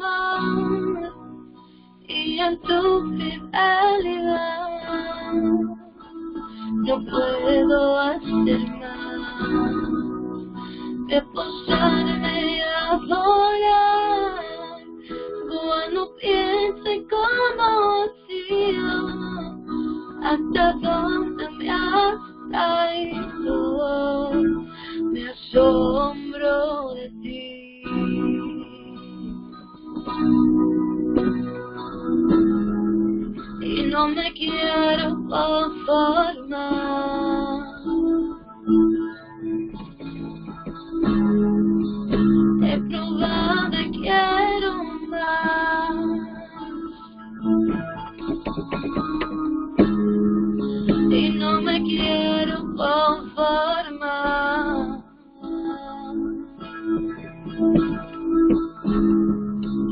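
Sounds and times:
person singing worship song: 0:00.0 - 0:29.2, 0:33.6 - 0:38.9, 0:42.1 - 0:47.6, 0:50.6 - 0:57.7
instrumental accompaniment: 0:27.2 - 0:59.9.

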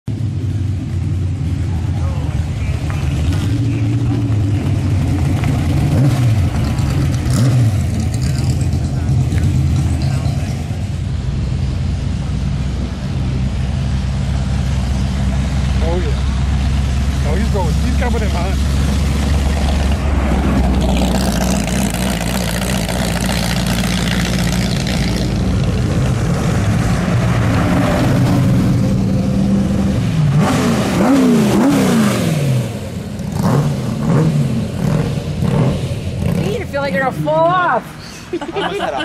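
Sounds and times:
racing cars driving slowly past: 0:00.1 - 0:39.0.

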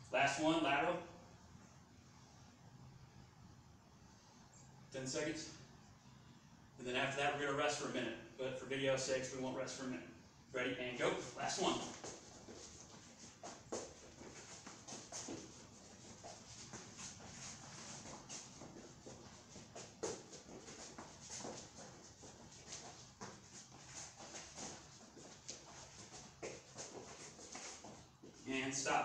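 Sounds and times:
sneaker footfalls on floor mat: 0:11.7 - 0:28.5.

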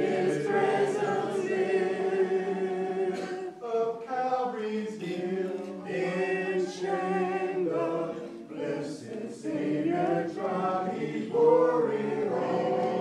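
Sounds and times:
congregation singing a hymn: 0:00.0 - 0:13.0.

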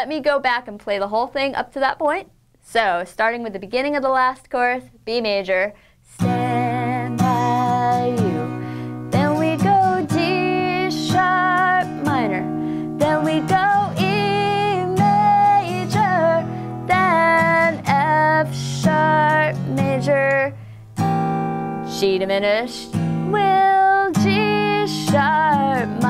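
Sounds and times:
woman singing: 0:06.1 - 0:20.6, 0:21.9 - 0:26.0
acoustic guitar strummed with a pick: 0:06.2 - 0:22.0, 0:22.7 - 0:26.0.

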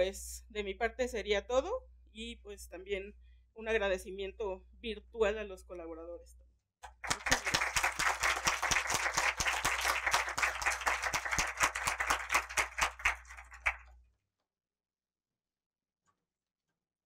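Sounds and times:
audience applauding: 0:06.9 - 0:13.9.

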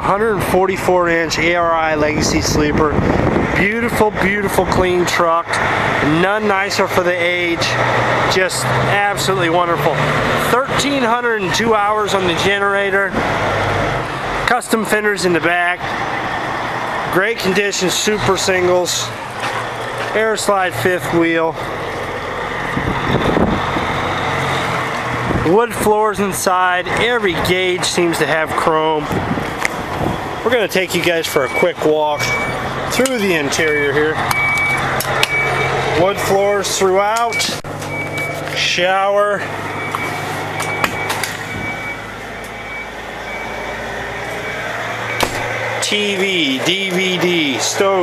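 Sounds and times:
truck engine droning: 0:00.0 - 0:48.0
wind noise on microphone: 0:01.6 - 0:05.0, 0:22.7 - 0:24.0, 0:25.2 - 0:25.5, 0:29.0 - 0:30.4, 0:41.4 - 0:41.8
low engine hum: 0:15.4 - 0:25.6.

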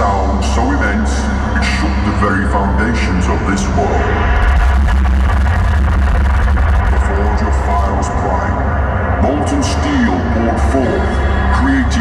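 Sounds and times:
deep rumbling soundtrack over loudspeakers: 0:00.0 - 0:12.0.

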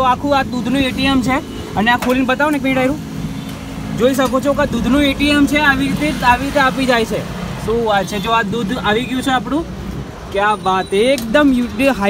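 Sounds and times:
people talking: 0:00.0 - 0:03.0, 0:04.0 - 0:09.7, 0:10.3 - 0:12.0.

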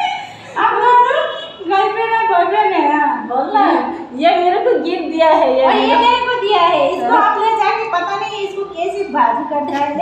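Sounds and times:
women talking and laughing: 0:00.0 - 0:10.0.

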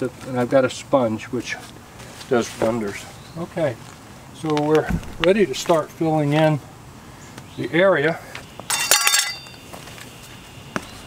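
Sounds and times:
metal tools clinking: 0:08.7 - 0:09.6.

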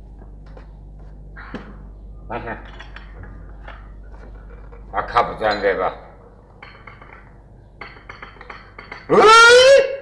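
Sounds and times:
porcelain clinking: 0:02.6 - 0:09.1.

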